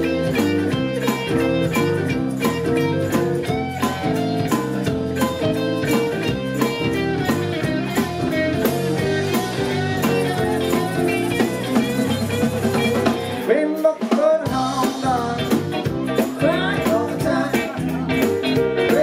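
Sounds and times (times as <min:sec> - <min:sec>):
blues rock band playing: 0:00.0 - 0:19.0
harmonica: 0:09.0 - 0:13.5.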